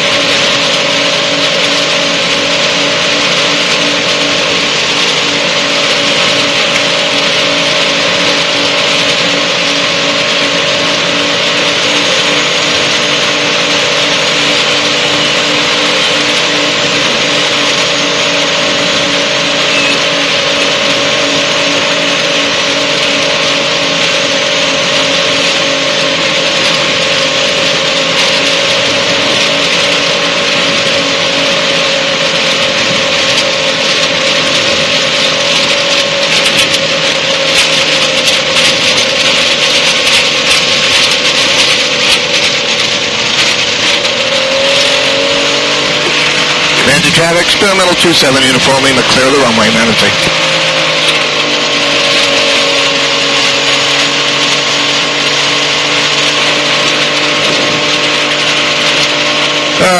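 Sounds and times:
aircraft engine idling: 0.0 - 59.9.

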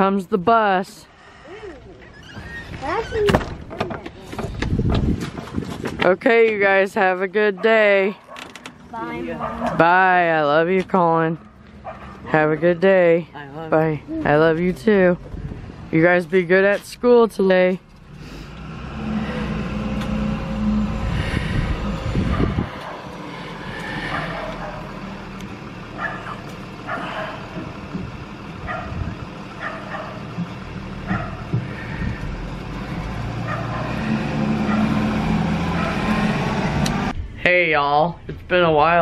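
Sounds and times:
diesel engine rumbling: 0.0 - 39.0
dog barking: 9.3 - 9.8, 11.8 - 12.7, 22.3 - 23.1, 24.0 - 25.0, 26.0 - 27.5, 28.6 - 29.0, 29.6 - 30.2, 31.1 - 31.5, 33.4 - 34.0, 34.6 - 35.0, 35.7 - 36.1.

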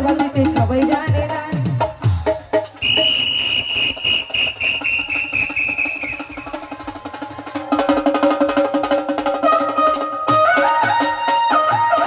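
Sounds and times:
folk drum with bending bass: 0.0 - 12.0
shrill whistling tone: 2.8 - 6.6.

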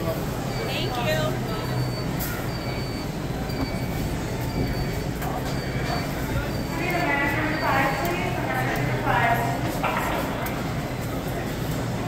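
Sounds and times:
murmur of shoppers' voices: 0.0 - 12.0
faint high-pitched beep: 0.5 - 8.2.

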